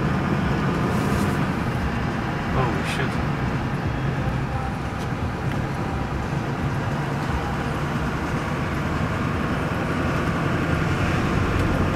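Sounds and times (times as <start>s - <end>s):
engine and tyre hum: 0.0s - 11.9s.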